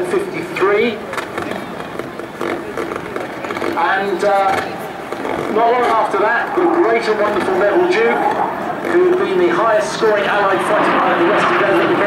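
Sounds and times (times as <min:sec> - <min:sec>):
jet flying past: 0:04.6 - 0:12.0.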